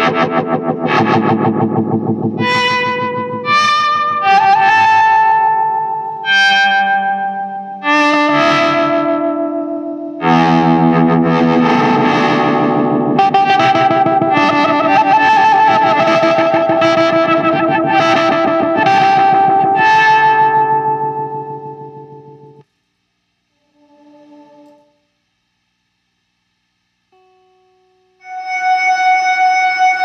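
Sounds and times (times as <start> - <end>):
pulsing synth-like electric guitar: 0.0 - 22.6.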